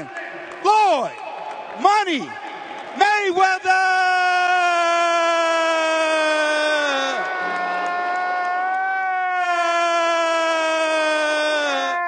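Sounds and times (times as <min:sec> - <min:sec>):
man's drawn-out announcer call: 0:00.0 - 0:07.3.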